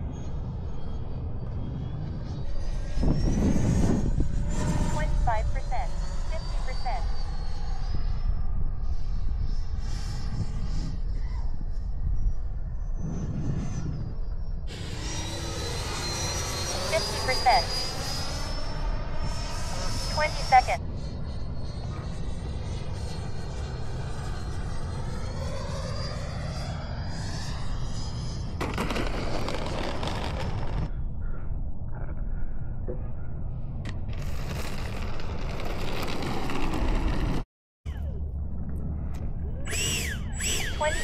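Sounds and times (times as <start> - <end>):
wind rumble on microphone: 0.0 - 41.0
model jet whine passing: 12.9 - 30.9, 34.1 - 37.4.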